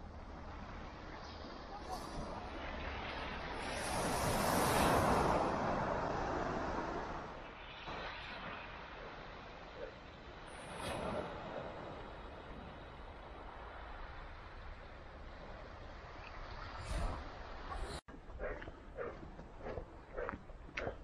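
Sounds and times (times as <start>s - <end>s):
waves washing over shingle: 1.4s - 9.6s.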